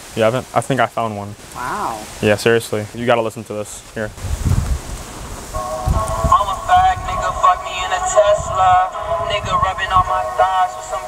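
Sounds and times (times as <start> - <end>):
tinny vocal music from small speaker: 5.8 - 11.0.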